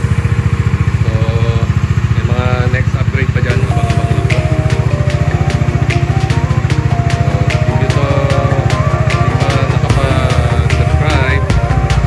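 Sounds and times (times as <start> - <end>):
motorcycle engine idling: 0.0 - 12.0
music with sung melody: 3.4 - 12.0.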